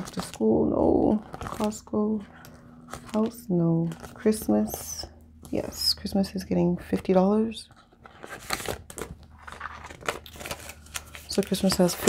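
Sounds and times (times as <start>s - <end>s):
banknotes and plastic pouch crinkling: 0.0s - 5.8s, 6.8s - 12.0s.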